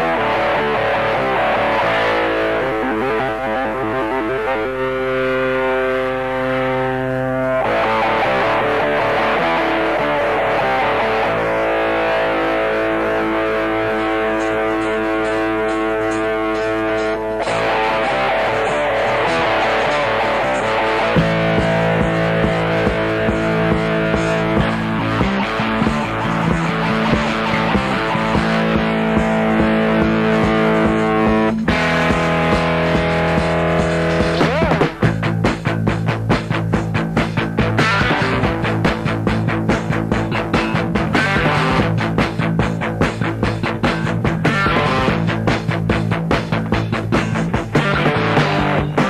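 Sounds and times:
steady drum beat: 0.0 - 3.4, 7.6 - 49.0
bass line: 0.0 - 49.0
distorted electric guitar chords: 0.0 - 49.0.

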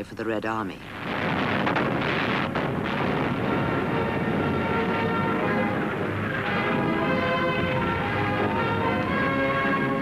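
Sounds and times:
shellfire and explosions: 0.8 - 8.8.

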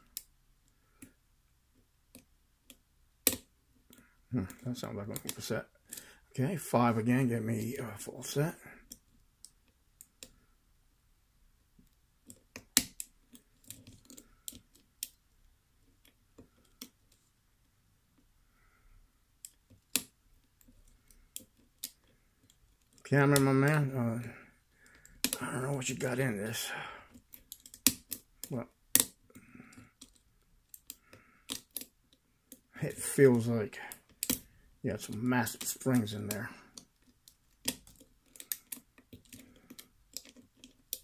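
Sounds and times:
lock pick metallic clicks: 2.1 - 3.5, 27.1 - 31.9, 33.9 - 34.5, 36.7 - 41.0
lock pick clicking in lock: 27.2 - 28.3, 30.0 - 31.9, 34.1 - 34.5.

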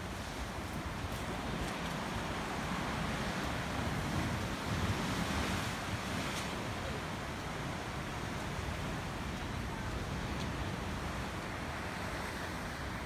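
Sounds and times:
ocean surf on rocks: 0.0 - 13.0.

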